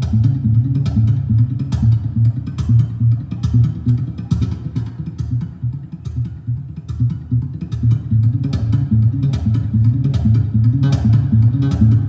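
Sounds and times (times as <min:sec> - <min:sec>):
fingerstyle acoustic guitar: 0:00.0 - 0:12.0.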